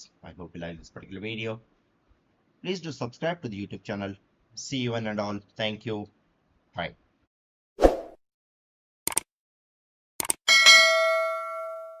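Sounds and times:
notification bell ding: 10.5s - 12.0s.

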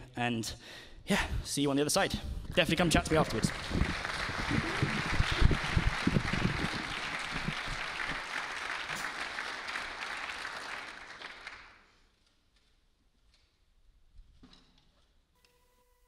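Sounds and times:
audience applauding: 2.7s - 11.8s.

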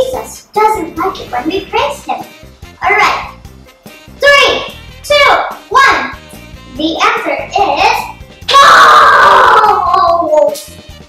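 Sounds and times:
background music with steady beat: 0.0s - 11.0s
girl screaming: 8.5s - 10.4s.

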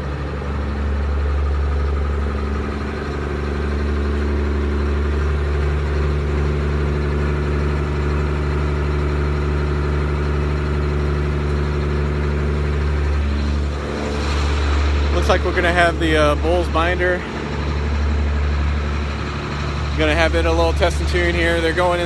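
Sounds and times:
tractor diesel engine idling: 0.0s - 22.0s.

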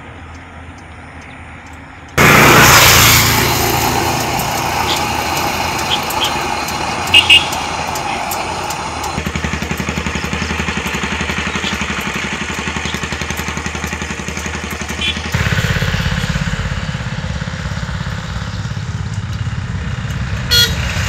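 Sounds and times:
small engine idling: 0.4s - 21.0s
louder engine: 2.2s - 21.0s
horn beeps: 4.5s - 8.2s, 20.5s - 21.0s.

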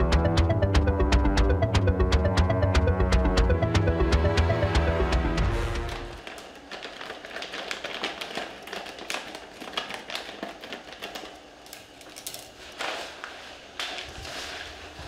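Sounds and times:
background music: 0.0s - 6.2s
plastic bag crinkling: 5.9s - 15.0s.

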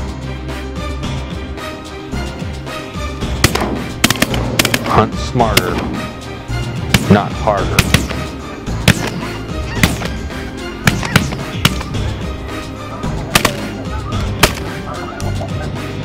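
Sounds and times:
background music: 0.0s - 16.0s
sharp cracks: 3.4s - 6.0s, 6.8s - 12.0s, 13.3s - 14.8s
geese honking: 7.9s - 15.9s.

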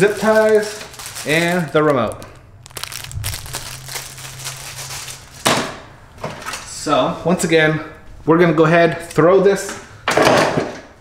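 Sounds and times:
packaging rustling: 0.0s - 5.5s.

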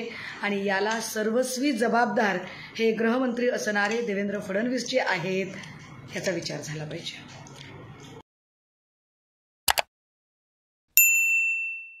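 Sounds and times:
notification bell ding: 11.0s - 12.0s.

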